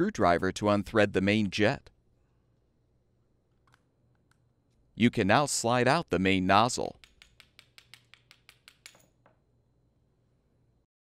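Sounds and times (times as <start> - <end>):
rapid metal clicks of screwdriver: 7.0 - 9.2.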